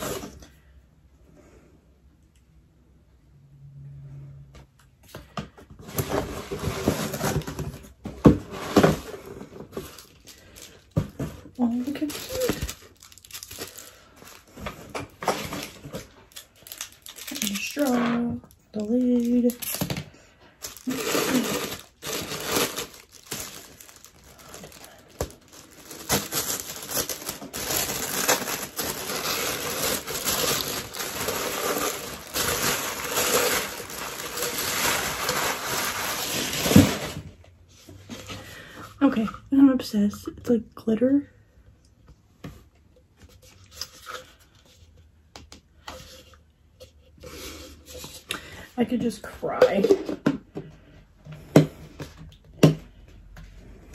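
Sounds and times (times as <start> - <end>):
tissue paper crinkling: 11.6 - 18.0, 20.6 - 37.2.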